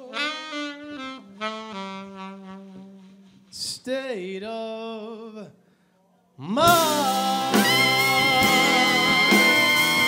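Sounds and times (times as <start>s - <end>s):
saxophone playing held notes: 0.0s - 3.4s
jazz ballad band: 0.0s - 3.8s, 6.5s - 10.0s.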